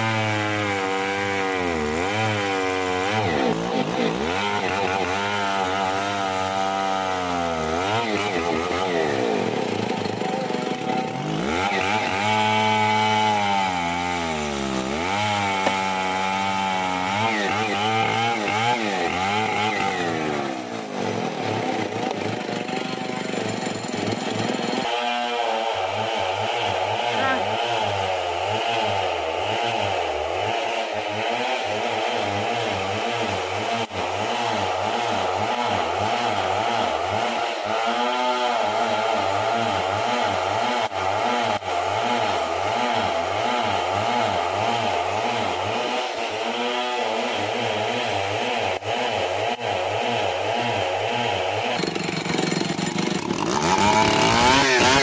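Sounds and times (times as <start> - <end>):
chainsaw engine running: 0.0 - 55.0.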